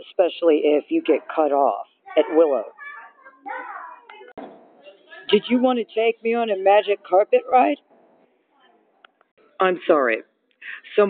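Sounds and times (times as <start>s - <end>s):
handling noise: 4.4s - 5.5s, 7.6s - 8.4s.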